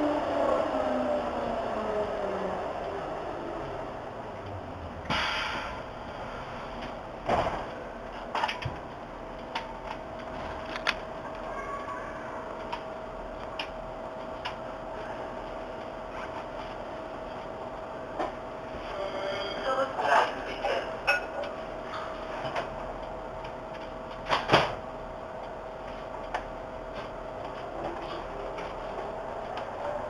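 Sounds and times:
faint steady hum: 0.0s - 30.0s
short hiss: 5.1s - 5.8s
scattered clicks: 9.3s - 11.5s, 12.6s - 14.6s.

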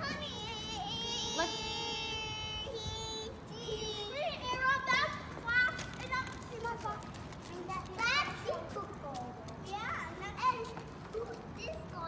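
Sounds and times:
young children shouting and squealing: 0.0s - 6.2s.

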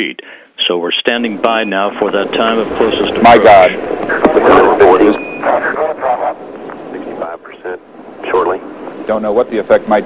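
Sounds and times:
voice chatter: 1.3s - 8.5s
short high beep: 5.1s - 5.6s.

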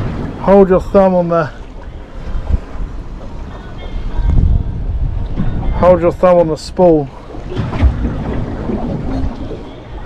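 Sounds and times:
sea washing against boat hull: 0.0s - 10.0s
wind rumbling on microphone: 0.0s - 10.0s.

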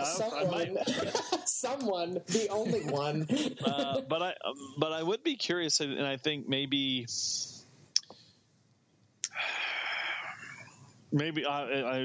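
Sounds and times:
mouth clicks: 7.9s - 8.2s, 9.2s - 9.9s
person breathing: 9.3s - 10.9s.

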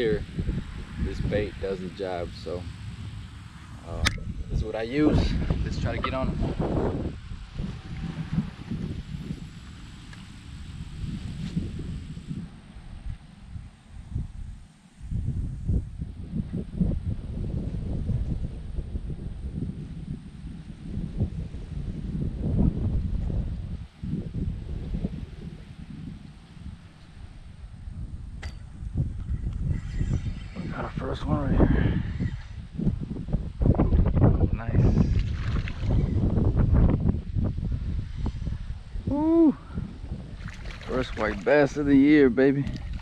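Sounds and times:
wind buffeting microphone: 0.0s - 43.0s.

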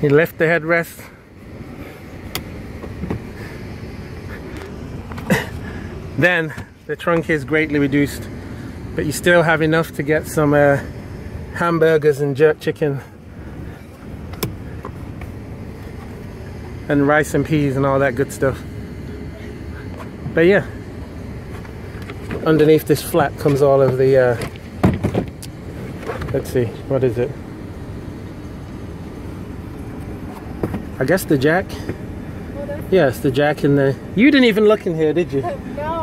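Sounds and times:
low steady rumble: 0.0s - 36.0s.

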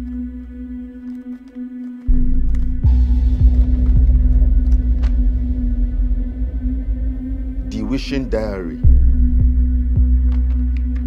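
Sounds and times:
deep throbbing bass hum: 2.1s - 11.0s
low sustained drone: 2.2s - 10.6s
man speaking: 7.7s - 9.0s.

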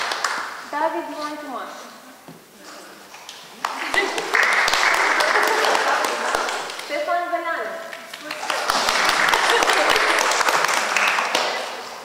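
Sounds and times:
audience applauding: 0.0s - 0.6s, 3.6s - 7.0s, 7.9s - 12.0s.

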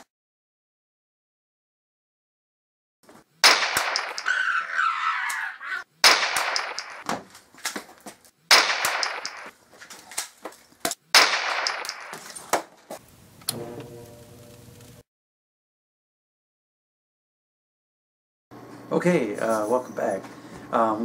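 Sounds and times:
gunshot bangs: 3.4s - 4.3s, 6.0s - 7.1s, 8.5s - 9.5s, 11.1s - 12.2s.

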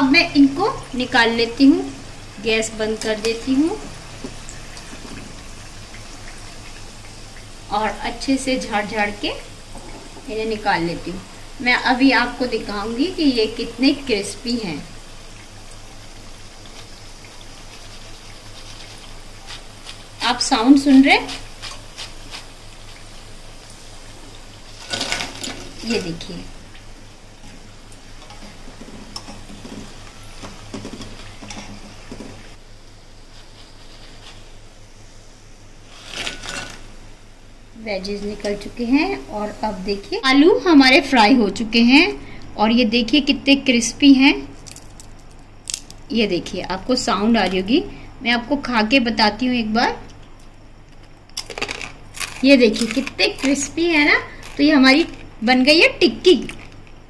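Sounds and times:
food deep-frying in bubbling oil: 0.0s - 57.0s
wire skimmer lifting fried pieces: 24.7s - 26.4s, 51.6s - 56.7s
steady low hum: 36.8s - 57.0s.

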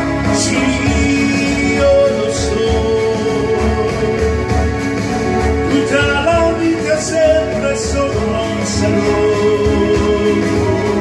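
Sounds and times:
backing track with steady beat: 0.0s - 11.0s
man singing into a microphone: 0.0s - 11.0s.

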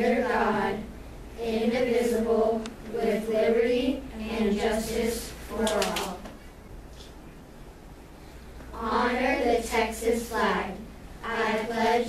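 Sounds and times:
children reciting in unison: 0.0s - 6.3s, 8.7s - 12.0s.

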